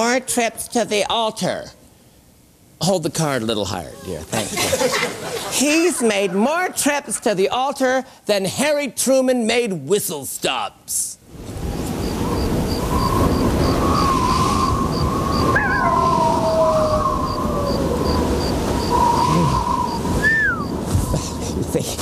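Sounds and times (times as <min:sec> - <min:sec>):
crickets chirping: 0:11.3 - 0:21.7
low wind: 0:11.3 - 0:22.0
wavering howl gliding down: 0:11.5 - 0:21.5.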